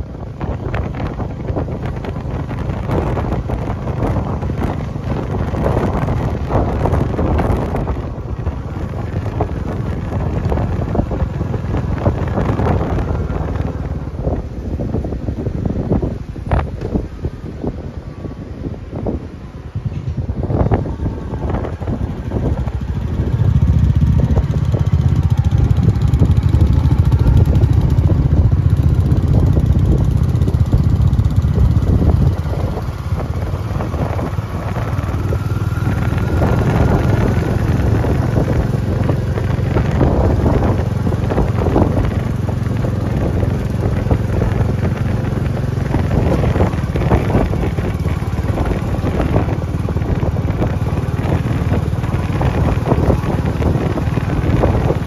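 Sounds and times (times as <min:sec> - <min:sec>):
motorcycle engine running: 0:00.0 - 0:55.0
wind buffeting microphone: 0:00.0 - 0:55.0.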